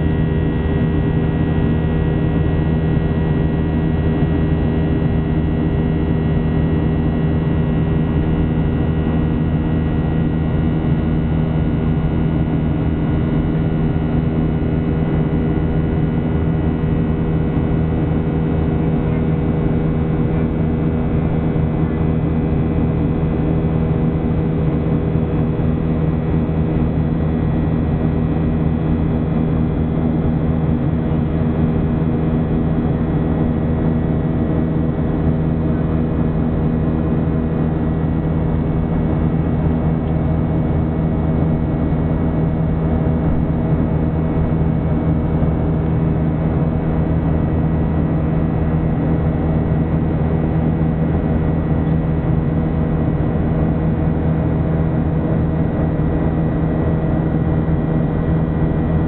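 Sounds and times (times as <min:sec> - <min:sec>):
jet engine cabin drone: 0:00.0 - 0:59.0
steady hum tones: 0:00.0 - 0:59.0.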